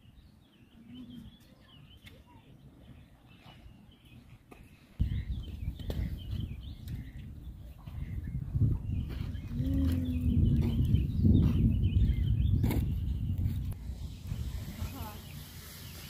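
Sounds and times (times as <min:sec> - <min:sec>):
small birds chirping: 0:00.0 - 0:13.8, 0:14.6 - 0:16.0
faint outdoor background noise: 0:00.0 - 0:16.0
low rumbling noise: 0:07.5 - 0:16.0.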